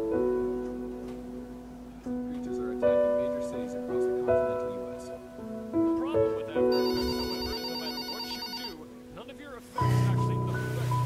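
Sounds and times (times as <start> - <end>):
soft background music: 0.0 - 11.0
mobile phone ringing: 6.7 - 8.9.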